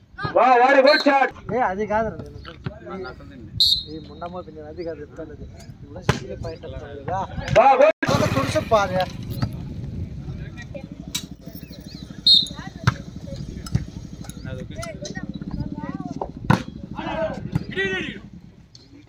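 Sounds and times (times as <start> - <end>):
people shouting: 16.9 - 18.2.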